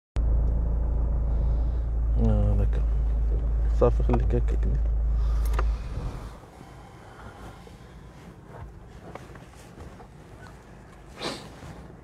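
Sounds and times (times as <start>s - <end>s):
car engine idling: 0.2s - 12.0s.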